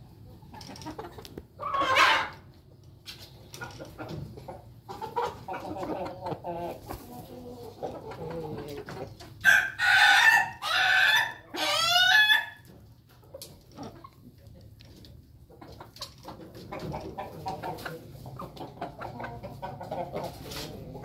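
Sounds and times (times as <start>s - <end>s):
chickens clucking softly: 0.0s - 21.0s
rooster crowing loudly: 9.4s - 12.5s.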